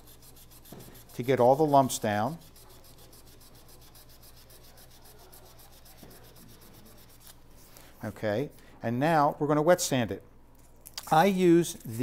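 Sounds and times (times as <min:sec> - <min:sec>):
sandpaper scratching on lathe: 0:00.0 - 0:07.4.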